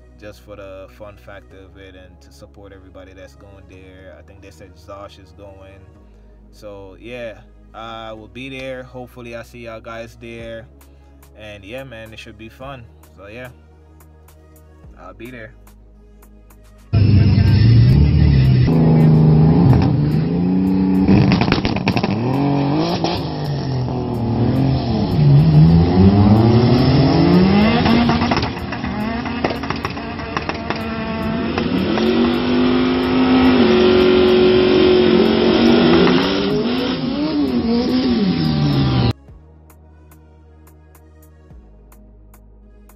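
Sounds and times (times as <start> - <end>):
race car engine revving: 17.0 - 39.2.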